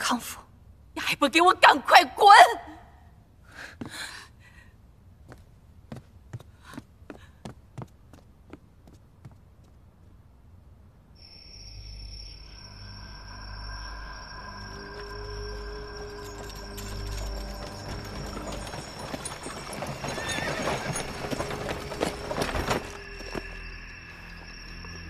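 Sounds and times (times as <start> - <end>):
soundtrack music with held tones: 12.2 - 25.0
hooves clattering: 14.6 - 25.0
horse whinnying: 16.4 - 22.6.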